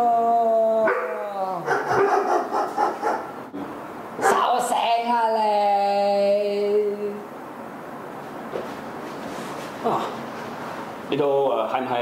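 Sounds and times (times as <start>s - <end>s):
dog barking and yelping: 0.9s - 3.4s.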